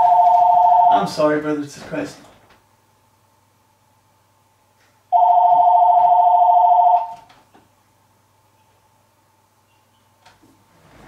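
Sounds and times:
electronic telephone ringing: 0.0s - 1.1s, 5.1s - 7.2s.

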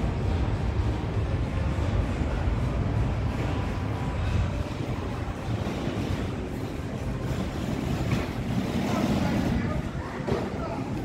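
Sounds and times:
city street ambience: 0.0s - 11.0s.

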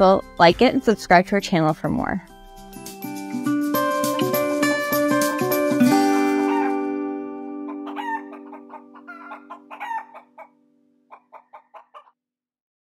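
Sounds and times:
held music chord: 2.9s - 9.3s
chickens clucking: 6.4s - 6.8s, 7.6s - 12.1s.

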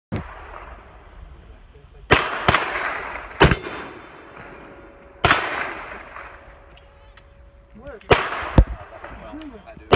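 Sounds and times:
gunshots with echo: 2.1s - 4.6s, 5.2s - 6.3s, 8.1s - 8.7s.

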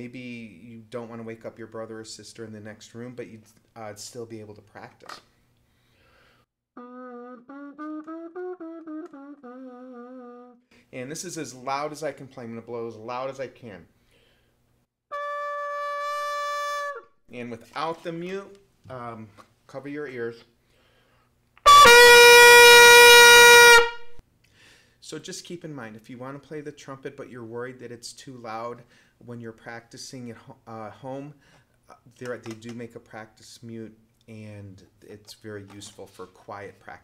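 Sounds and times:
muted trumpet notes: 15.1s - 17.1s, 21.6s - 24.2s.

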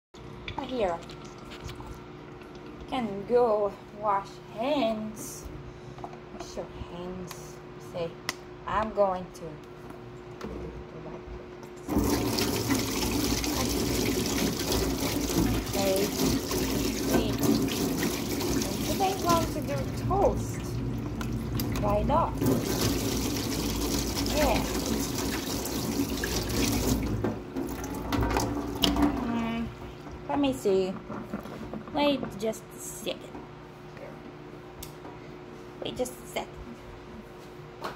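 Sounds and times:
water running into metal sink: 11.8s - 29.6s.

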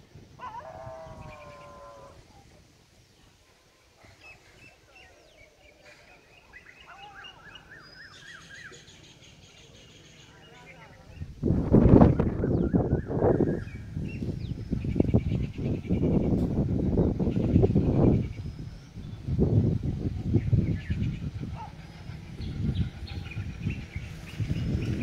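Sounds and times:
wind gusts on microphone: 0.0s - 2.7s, 10.9s - 25.0s
small birds chirping: 12.3s - 25.0s.

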